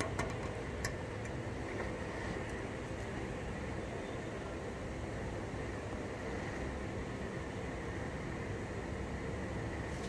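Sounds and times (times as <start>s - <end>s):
background hum and rumble: 0.0s - 10.0s.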